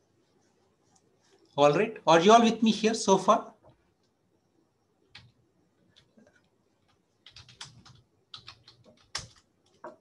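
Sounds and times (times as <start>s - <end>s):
typing on computer keyboard: 5.1s - 10.0s.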